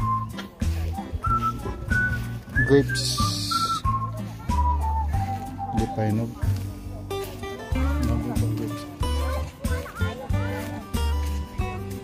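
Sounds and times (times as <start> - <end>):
whistled melody over bass: 0.0 - 6.5, 9.6 - 11.8.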